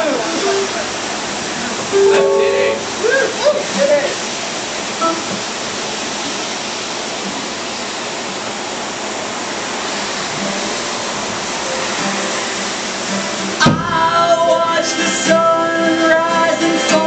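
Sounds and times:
rain falling: 0.0s - 17.0s
strummed guitars: 1.8s - 4.2s, 11.7s - 17.0s
live band playing: 1.9s - 3.0s.

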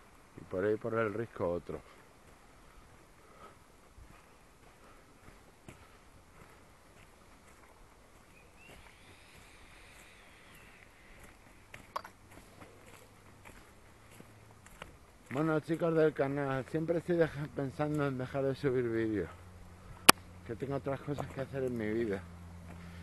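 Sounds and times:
footsteps on dry leaves: 4.0s - 16.0s.

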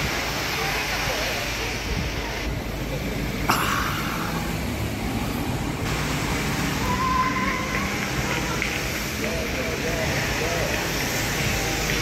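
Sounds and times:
traffic noise with low rumble: 0.0s - 12.0s.

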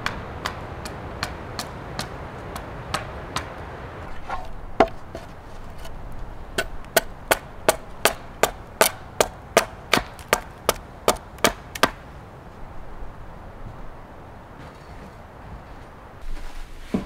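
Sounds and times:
axe chopping wood: 4.3s - 5.9s, 6.6s - 12.0s.

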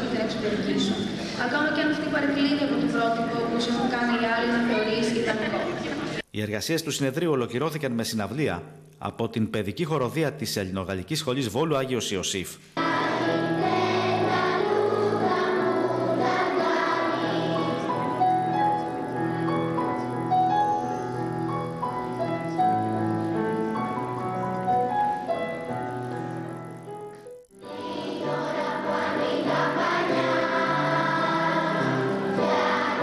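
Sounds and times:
children's choir singing: 12.8s - 24.0s, 27.6s - 33.0s.

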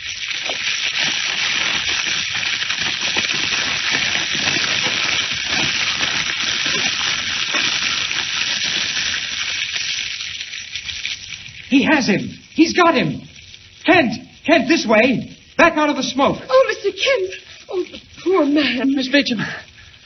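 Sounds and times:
fire crackling and hissing: 0.0s - 20.0s.

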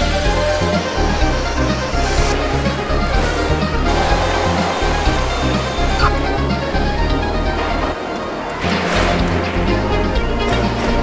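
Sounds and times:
dense instrumental music: 0.0s - 11.0s.

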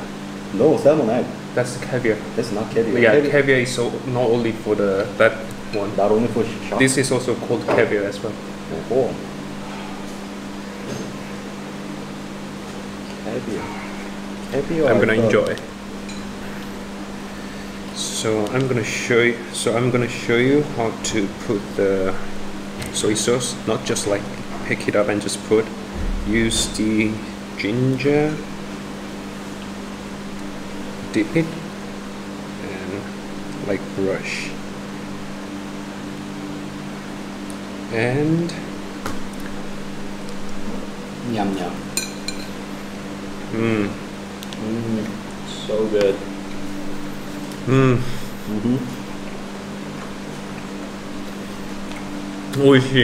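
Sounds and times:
room hum and hiss: 0.0s - 53.0s
constant low tone: 25.9s - 27.3s.

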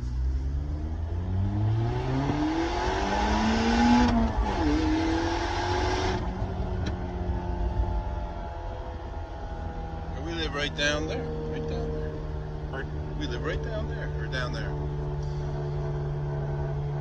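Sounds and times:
car engine accelerating: 0.0s - 17.0s.

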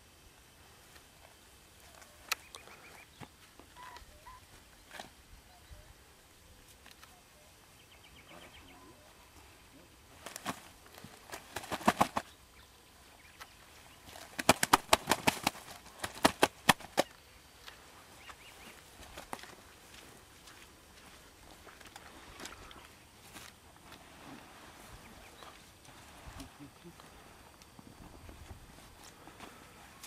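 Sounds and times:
faint bird chirps: 1.2s - 10.0s.

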